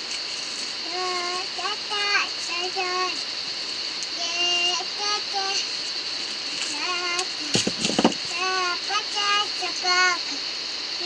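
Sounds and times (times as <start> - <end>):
child singing: 0.8 - 3.2, 4.2 - 5.7, 6.6 - 7.6, 8.3 - 10.4
rustle and knock of maize cobs: 5.6 - 8.4.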